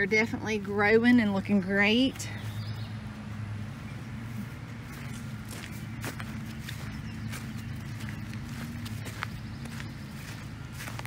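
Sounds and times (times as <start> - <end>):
footsteps crunching on straw: 4.2 - 11.0.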